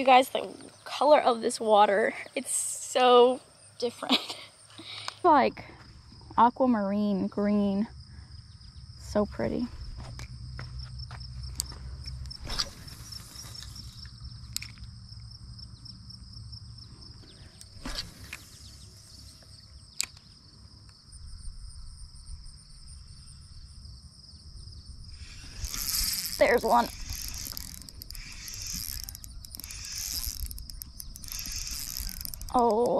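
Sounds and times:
high-pitched pulsing insects: 0.0s - 32.9s
sharp clicks and knocks: 25.6s - 32.9s.

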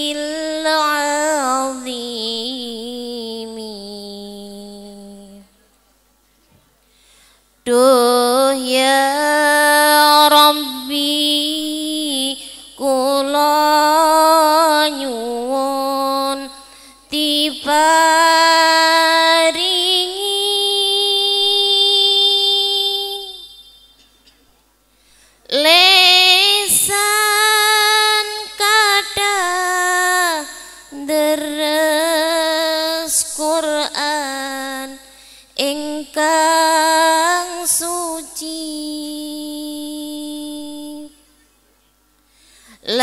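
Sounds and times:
woman singing a chant: 0.0s - 5.6s, 7.6s - 23.9s, 25.5s - 41.4s, 42.8s - 43.0s.

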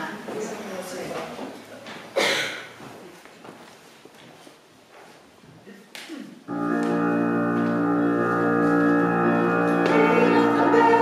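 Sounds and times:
faint shuffling and rustling: 2.7s - 5.8s
held keyboard chord: 6.5s - 11.0s.

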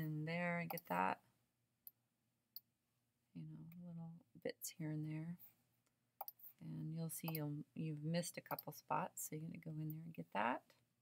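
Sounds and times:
computer mouse clicks: 0.6s - 1.0s, 6.2s - 6.5s, 7.2s - 7.5s, 8.4s - 8.8s.

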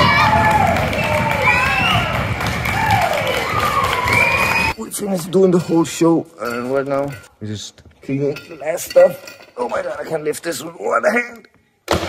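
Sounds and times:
audience applauding: 0.0s - 4.7s
shouted cheers sliding down in pitch: 0.0s - 4.7s.

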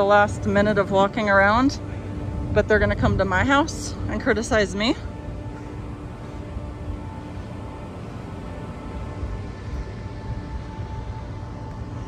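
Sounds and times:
faint background music tone: 0.0s - 12.0s
low outdoor rumble: 0.0s - 12.0s.

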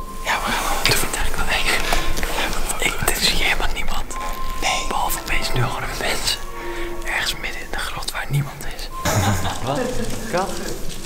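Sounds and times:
background music: 0.0s - 11.0s
man whispering: 0.2s - 11.0s.

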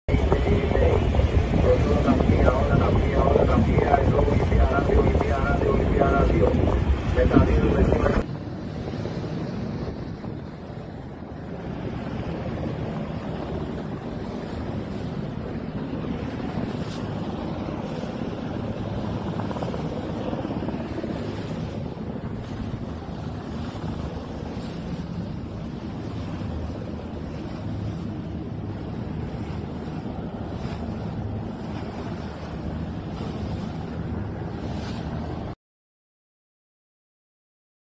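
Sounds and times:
wind buffeting microphone: 0.1s - 35.5s
low rumble: 0.1s - 35.6s
sea water washing: 0.1s - 35.6s.

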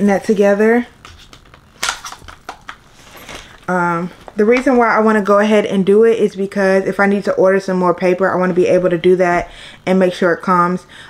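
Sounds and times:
plastic wrapping crinkling: 1.0s - 4.8s.

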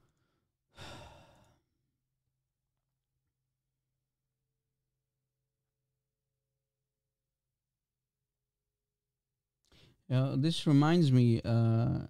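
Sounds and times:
breathy sigh: 0.7s - 1.6s.

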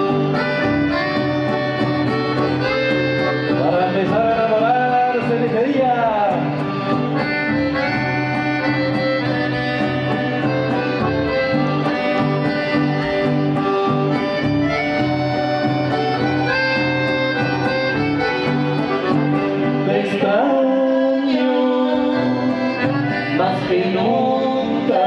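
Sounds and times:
steady bass line: 0.0s - 20.4s
accordions playing melody: 0.0s - 25.0s
guitar: 0.0s - 25.0s.

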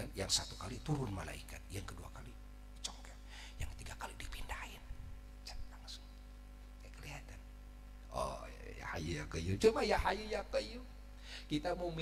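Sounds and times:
steady low hum: 0.0s - 12.0s
man whispering into microphone: 1.9s - 6.2s.

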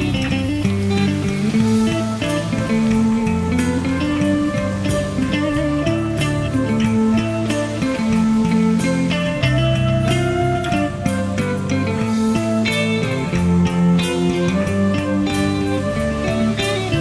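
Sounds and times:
bass and held chords: 0.0s - 17.0s
electric guitar melody: 0.0s - 17.0s
light drum strokes: 0.0s - 17.0s.

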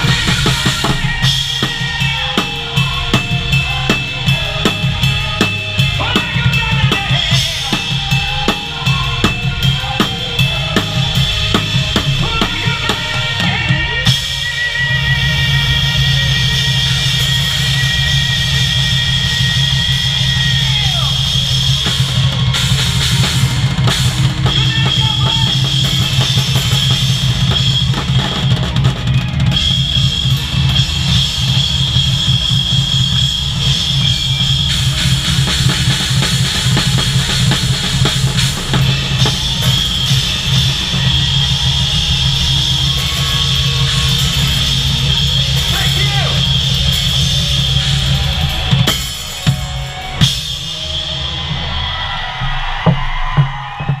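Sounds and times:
live rock band: 0.0s - 54.0s
snare and cymbal hits: 0.0s - 54.0s
fast bass drum pulse: 16.6s - 54.0s
low drum thumps: 52.3s - 54.0s.

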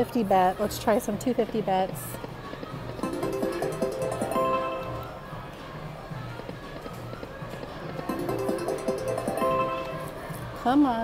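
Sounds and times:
slot machine chimes: 3.0s - 5.3s, 8.1s - 10.4s
slot machine electronic music: 3.0s - 5.3s, 8.1s - 10.4s.

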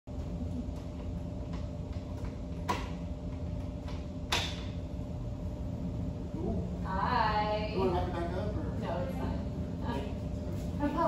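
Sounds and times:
low room hum: 0.1s - 11.0s.

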